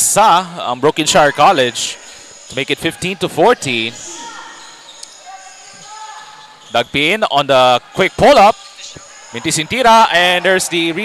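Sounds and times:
faint voices in hall: 0:00.0 - 0:11.0.

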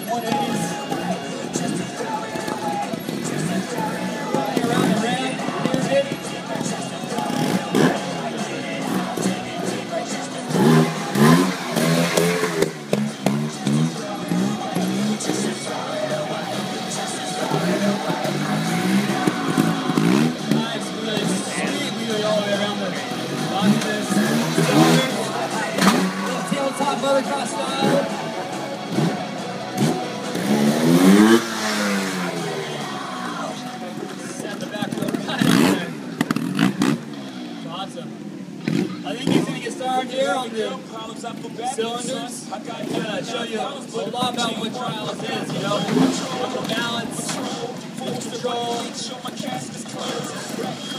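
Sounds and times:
motorcycle engine revving: 0:00.0 - 0:39.7, 0:44.2 - 0:50.9.

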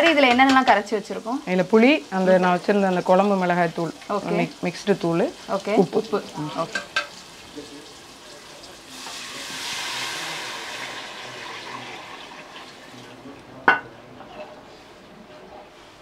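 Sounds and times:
liquid sizzling in hot pot: 0:00.0 - 0:16.0.

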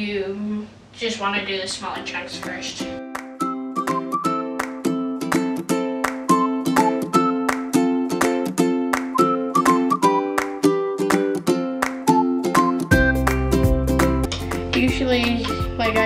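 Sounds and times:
plucked string instrument strumming: 0:02.4 - 0:16.0
simple higher melody: 0:03.0 - 0:16.0.

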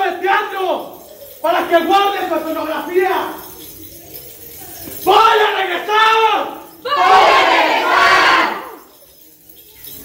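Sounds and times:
group of voices shouting: 0:06.8 - 0:08.8.

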